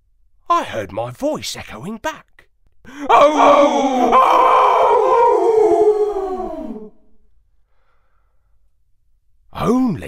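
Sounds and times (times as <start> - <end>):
echoing voiced oh: 2.9 - 7.0
faint breath: 7.5 - 8.7.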